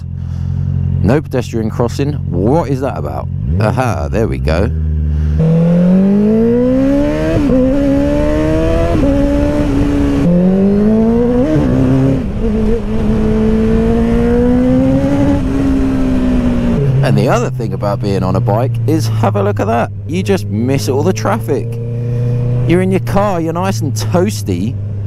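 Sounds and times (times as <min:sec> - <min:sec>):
motorcycle engine revving: 0:00.0 - 0:25.0.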